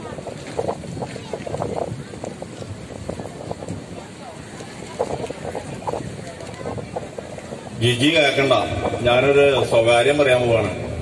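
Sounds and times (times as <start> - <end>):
man speaking over public address: 7.8 - 11.0.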